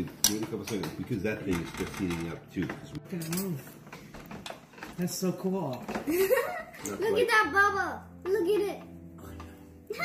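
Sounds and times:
utensils clicking against pan: 0:00.0 - 0:06.0.

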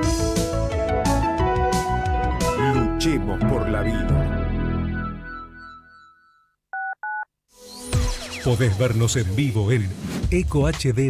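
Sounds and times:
music: 0:00.0 - 0:06.0, 0:07.5 - 0:11.0
touch-tone beeps: 0:06.8 - 0:07.3.

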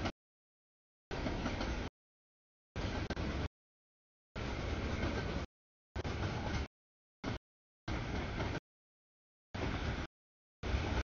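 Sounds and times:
freight train rumbling past: 0:02.8 - 0:03.5, 0:04.4 - 0:08.6, 0:09.6 - 0:11.0.

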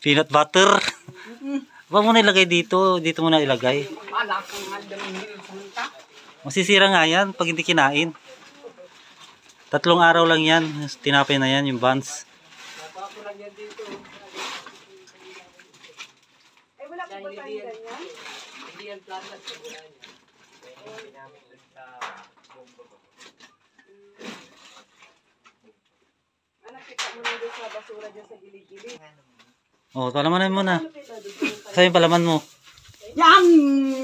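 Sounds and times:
sacks rustling and knocking: 0:00.1 - 0:25.5, 0:30.2 - 0:34.0.

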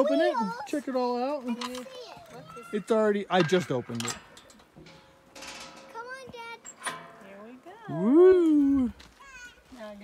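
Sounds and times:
child's voice: 0:00.0 - 0:00.8, 0:01.7 - 0:02.7, 0:09.1 - 0:09.8
metal latch scraping rattle: 0:01.5 - 0:07.5
metal latch click: 0:03.3 - 0:05.7.

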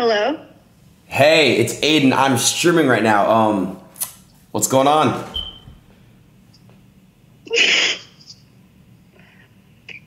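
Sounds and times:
person sneezing: 0:07.6 - 0:08.2.

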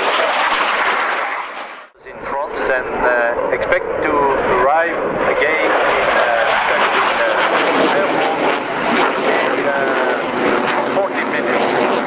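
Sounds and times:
jet engines roaring: 0:00.0 - 0:12.0.

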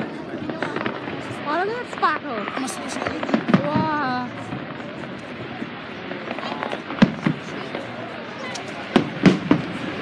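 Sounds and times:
firework bangs: 0:00.0 - 0:10.0
fireworks crackling: 0:00.0 - 0:10.0.

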